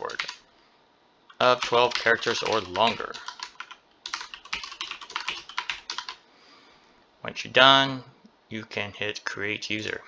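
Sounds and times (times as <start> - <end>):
rapid computer keyboard typing: 0.0 - 0.4, 1.3 - 6.2.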